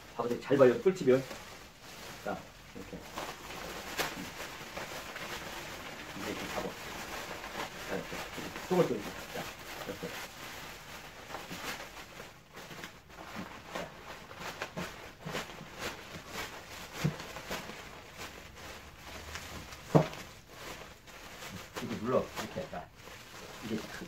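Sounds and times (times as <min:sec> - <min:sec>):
bubble wrap crinkling and crackling: 0:00.0 - 0:24.0.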